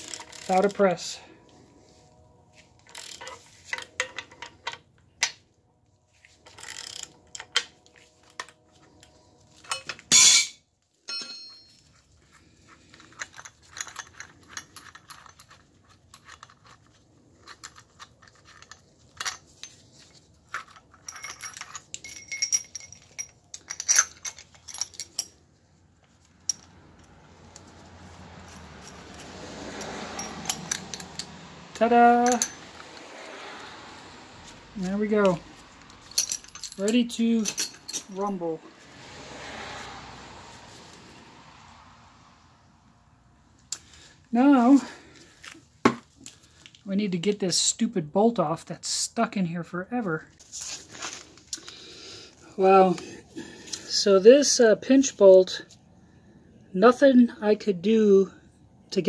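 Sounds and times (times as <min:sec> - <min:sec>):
metal clicks and clinks: 0:12.9 - 0:19.8, 0:20.5 - 0:25.4, 0:26.0 - 0:27.7, 0:28.4 - 0:33.3, 0:35.2 - 0:38.5.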